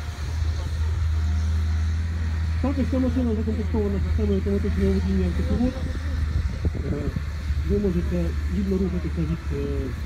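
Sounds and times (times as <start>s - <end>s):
sprayer engine droning: 0.0s - 10.0s.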